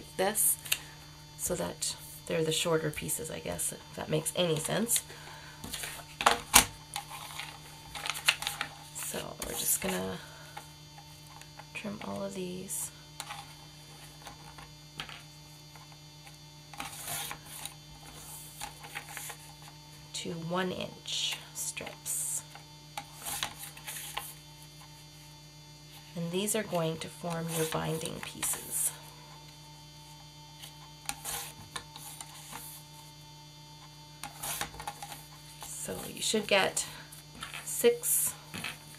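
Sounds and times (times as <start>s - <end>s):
mains hum: 0.0s - 38.9s
paper sliding on a trimmer: 31.1s - 33.0s.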